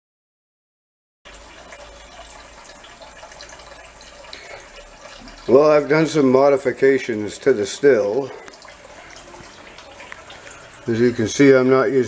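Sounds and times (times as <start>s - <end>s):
water running through hoses: 1.3s - 12.0s
water trickling into bucket: 1.3s - 12.0s.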